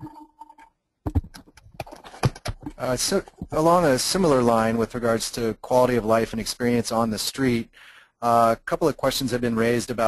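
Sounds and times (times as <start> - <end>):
sharp clicks and knocks: 0.0 - 3.6
man saying uh: 2.8 - 10.0.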